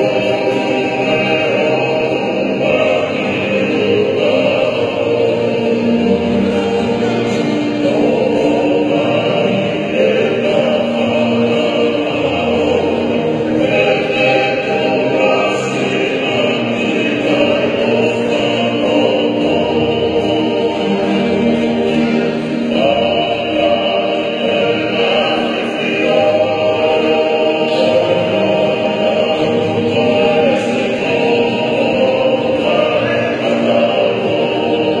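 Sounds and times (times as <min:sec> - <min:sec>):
men singing in harmony: 0:00.0 - 0:35.0
strummed acoustic guitars: 0:00.0 - 0:35.0.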